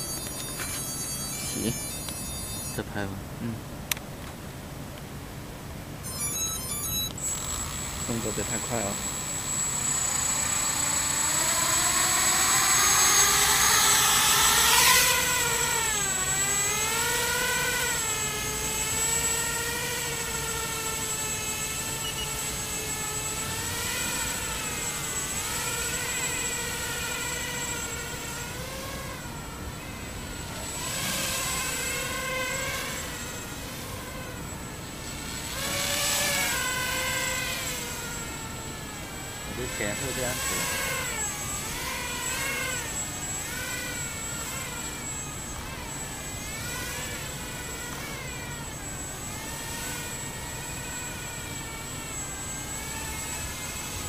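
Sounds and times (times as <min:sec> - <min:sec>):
drone motors and propellers whining: 0:00.0 - 0:54.0.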